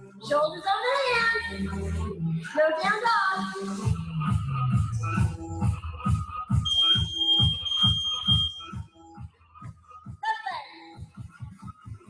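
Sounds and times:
electronic workout music: 0:00.0 - 0:12.0
high electronic beep: 0:06.7 - 0:08.8.

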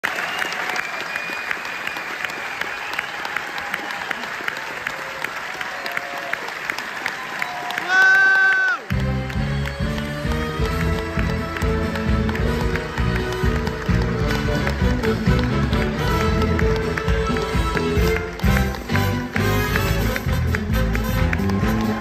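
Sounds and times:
audience applauding: 0:00.0 - 0:22.0.

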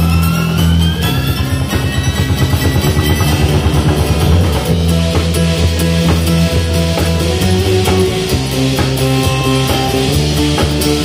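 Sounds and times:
fast pulsing bass and drums: 0:00.0 - 0:11.0
live band playing instrumental: 0:00.0 - 0:11.0
sliding note rising: 0:01.1 - 0:05.5.

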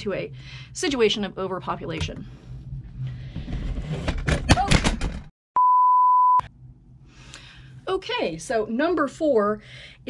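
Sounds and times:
electronic beep: 0:05.6 - 0:06.4.

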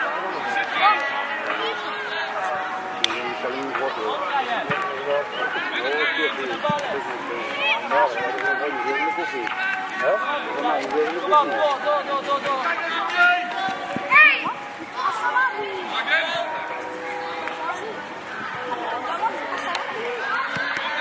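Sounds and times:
many voices shouting: 0:00.0 - 0:21.0.

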